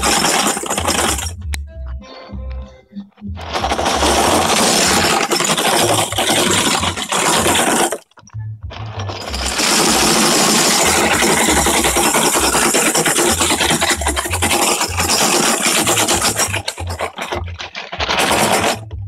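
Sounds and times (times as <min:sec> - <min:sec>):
music with stepping bass line: 0:00.8 - 0:05.0, 0:08.2 - 0:12.6, 0:16.2 - 0:19.0.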